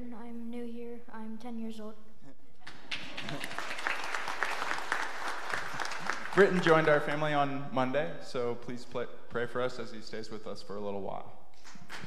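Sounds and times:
crowd applauding: 2.6s - 7.4s.

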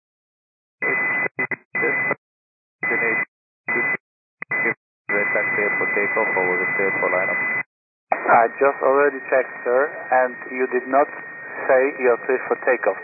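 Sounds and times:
radio transmission bursts: 0.8s - 2.2s, 2.8s - 13.0s
steady high radio tone: 0.8s - 2.2s, 2.8s - 13.0s
pilot's voice over radio: 2.9s - 3.9s, 4.6s - 7.4s, 8.1s - 13.0s.

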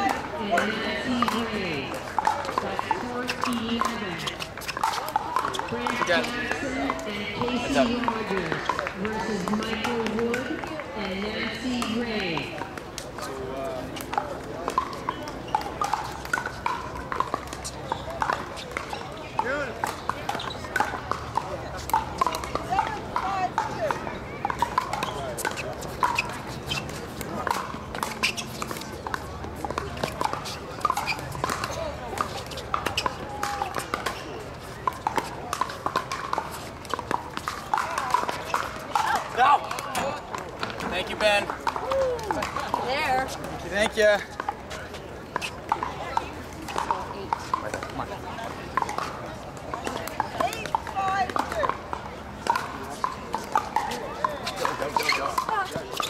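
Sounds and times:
voices chattering: 0.0s - 56.0s.

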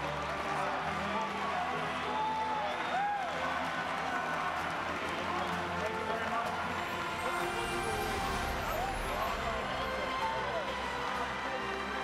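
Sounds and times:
echoing crowd chatter and calls: 0.0s - 12.0s
faint music: 0.0s - 12.0s.

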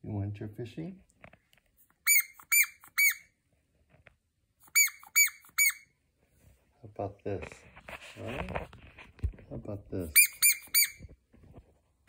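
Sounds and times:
dog toy squeaking: 2.0s - 3.3s, 4.6s - 5.9s, 10.0s - 11.1s.

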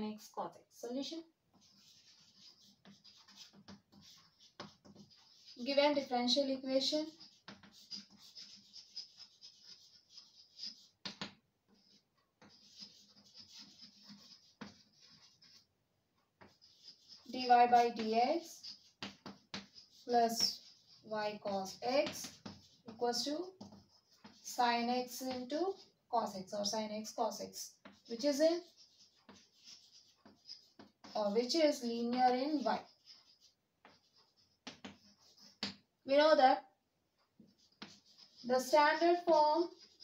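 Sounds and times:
chalk tap: 1.5s - 6.1s, 6.8s - 15.7s, 16.4s - 35.8s, 37.3s - 40.0s
chalk writing on blackboard: 1.5s - 15.7s, 16.4s - 36.2s, 37.4s - 40.0s.

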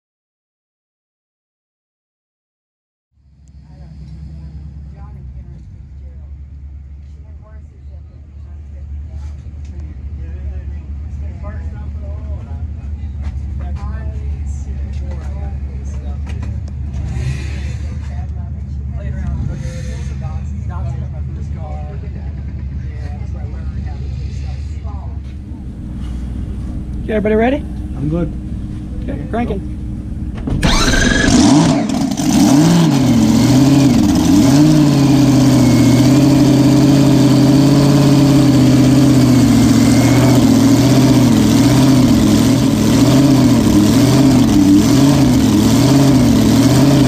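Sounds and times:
low rumble: 3.2s - 36.3s
faint voices talking: 3.5s - 29.8s.

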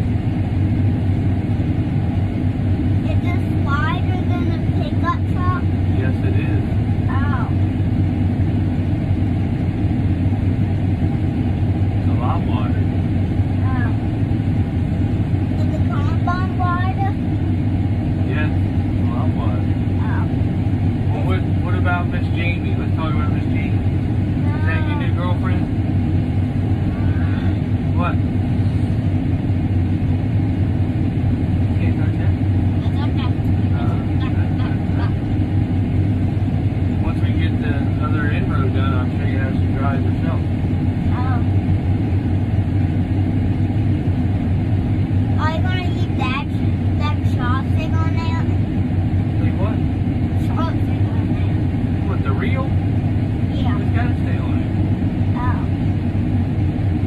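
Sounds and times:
tractor engine drone from cab: 0.0s - 57.0s.

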